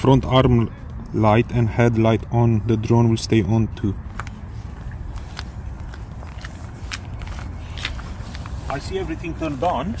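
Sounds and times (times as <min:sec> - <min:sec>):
footsteps on asphalt: 0:04.0 - 0:10.0.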